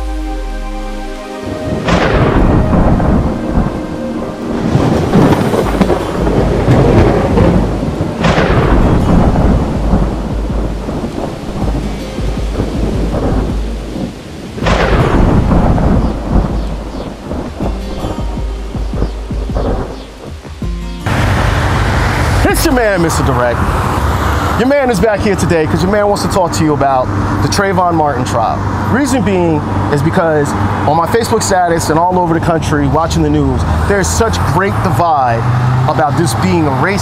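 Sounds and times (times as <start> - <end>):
heavy rain: 0.0 - 37.0
thunder claps rumbling: 0.0 - 37.0.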